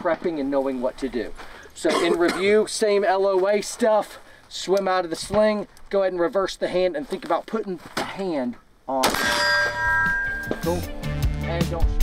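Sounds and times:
rifle shot: 9.0s - 9.5s
steel target ringing: 9.0s - 10.9s.

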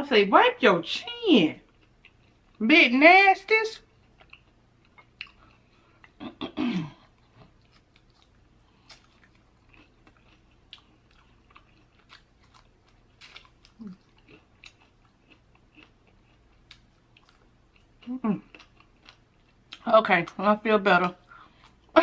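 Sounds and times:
chewing crunches: 3.8s - 6.2s, 7.0s - 20.4s.

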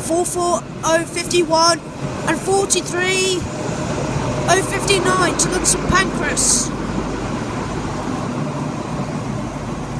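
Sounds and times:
rail noise: 0.0s - 9.9s
train diesel engine running: 0.0s - 9.9s.

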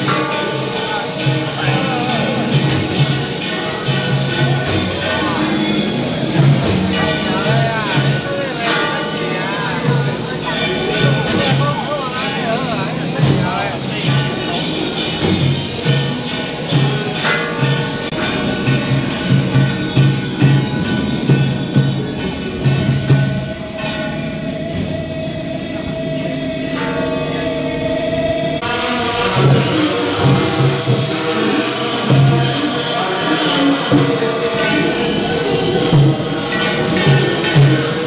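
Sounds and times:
crowd voices: 0.0s - 38.0s
horn-like wind melody: 0.0s - 38.0s
procession band music: 0.0s - 38.0s.

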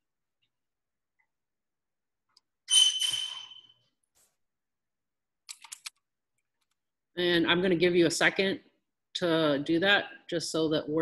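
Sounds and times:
computer keyboard keystrokes: 5.5s - 6.0s.

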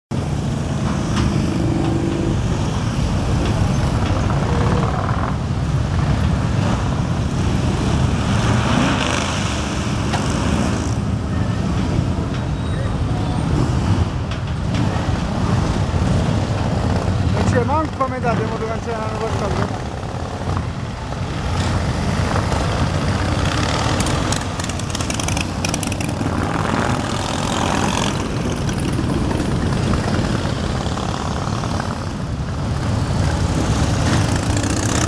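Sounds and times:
motorcycles rumbling past: 0.5s - 11.3s, 19.1s - 35.0s
person speaking: 17.4s - 19.9s.

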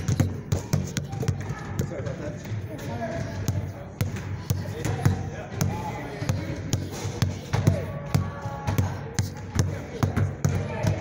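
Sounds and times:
basketball bouncing on hard floor: 0.0s - 11.0s.

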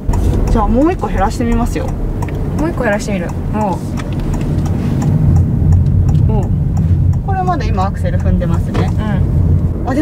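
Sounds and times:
road and tyre rumble: 0.0s - 10.0s
turn signal ticking: 0.0s - 10.0s.

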